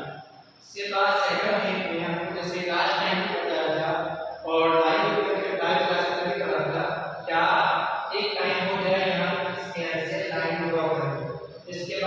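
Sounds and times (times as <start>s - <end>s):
person chanting recitation: 0.0s - 12.0s.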